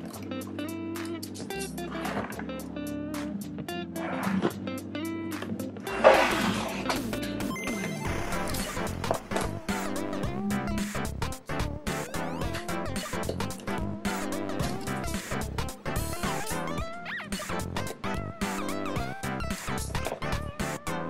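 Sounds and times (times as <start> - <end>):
backing music with steady beat: 0.0 - 21.0.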